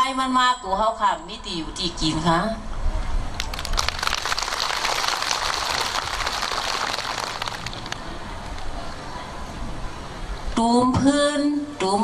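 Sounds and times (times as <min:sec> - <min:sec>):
audience applauding: 0:03.4 - 0:08.0.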